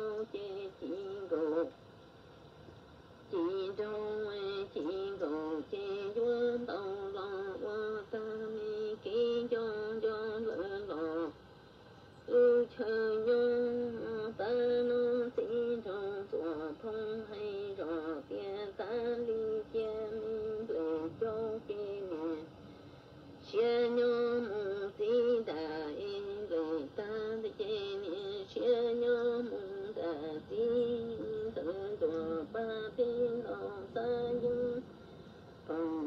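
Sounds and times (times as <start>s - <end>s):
person singing long wavering notes: 0.0s - 1.7s, 3.3s - 11.4s, 12.3s - 22.5s, 23.4s - 34.9s, 35.6s - 36.0s.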